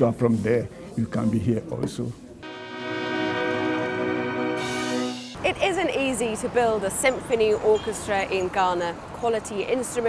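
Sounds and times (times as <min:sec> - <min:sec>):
orchestra strings holding a chord: 0:02.4 - 0:05.4.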